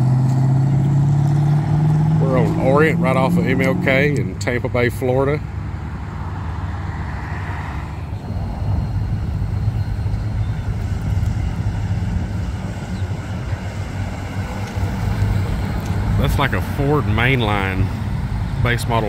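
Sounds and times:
car engine rumble: 0.0s - 19.0s.

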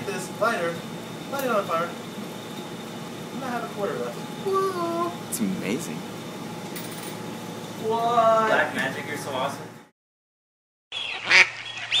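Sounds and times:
duck quacking: 11.0s - 12.0s.

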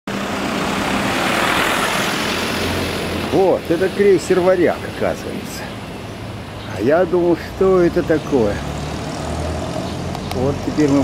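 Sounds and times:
road noise: 0.0s - 11.0s
truck engine hum: 0.1s - 11.0s.

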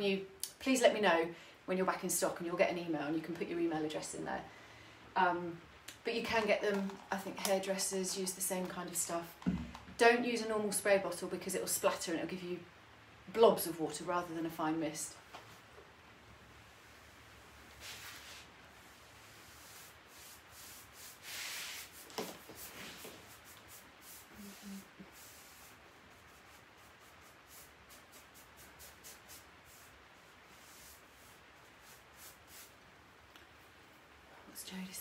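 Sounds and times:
paintbrush brushing on wood: 17.7s - 32.8s.

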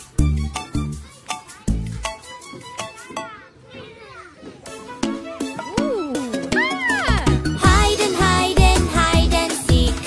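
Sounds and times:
light music: 0.0s - 3.4s, 4.6s - 10.0s
cartoon children giggling and chattering: 0.0s - 8.0s.

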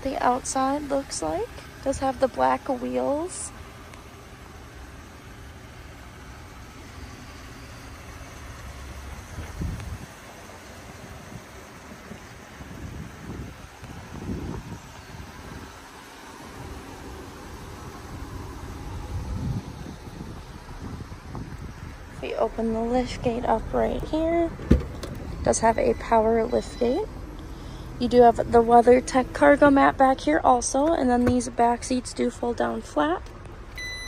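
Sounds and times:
wind buffeting microphone: 9.2s - 10.2s, 11.0s - 15.8s, 16.5s - 26.2s.

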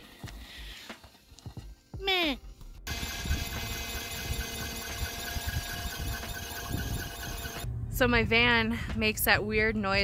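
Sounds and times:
high-pitched whine: 2.9s - 7.7s.

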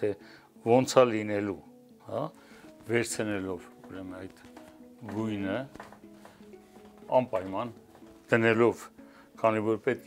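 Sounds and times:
man speaking: 5.0s - 5.8s, 7.0s - 10.0s.

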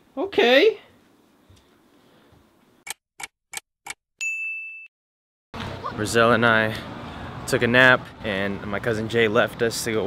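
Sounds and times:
bright ding: 4.2s - 4.9s.

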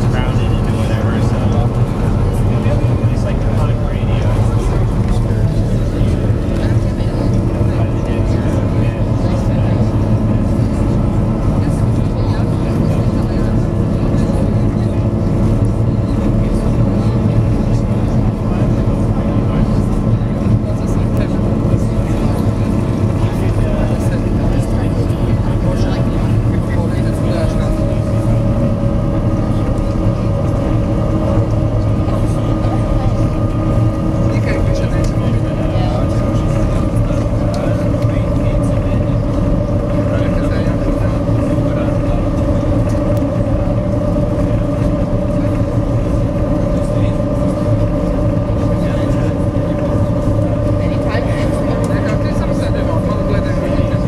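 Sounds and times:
ferry engines droning: 0.0s - 54.0s.

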